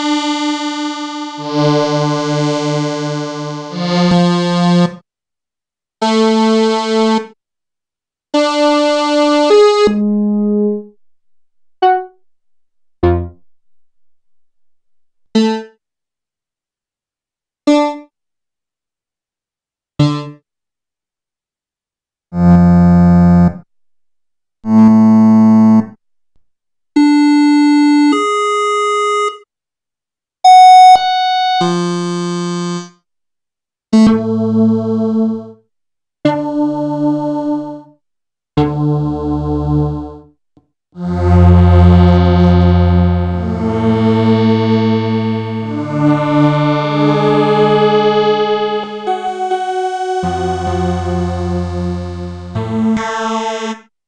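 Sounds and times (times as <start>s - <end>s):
synthesizer chords and notes: 0.0s - 4.9s, 8.4s - 15.7s, 41.0s - 53.7s.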